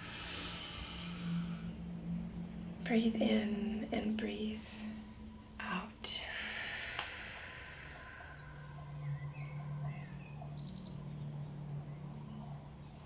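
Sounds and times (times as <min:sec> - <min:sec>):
long breathy exhale: 0:00.0 - 0:01.8, 0:06.3 - 0:08.8
steady low hum: 0:00.0 - 0:13.0
faint bird chirps: 0:04.4 - 0:13.0.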